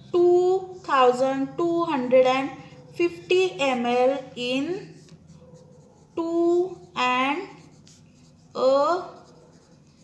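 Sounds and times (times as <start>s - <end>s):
woman speaking drawn-out words: 0.2s - 5.0s, 6.2s - 7.6s, 8.6s - 9.3s
pen scratching on paper: 3.0s - 10.0s.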